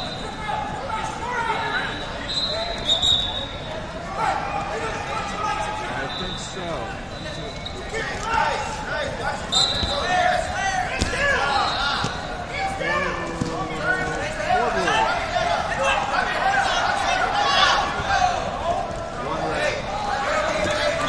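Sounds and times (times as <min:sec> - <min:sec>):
voices of coaches and spectators: 0:00.0 - 0:21.0
shoes squeaking on mats: 0:09.4 - 0:12.4.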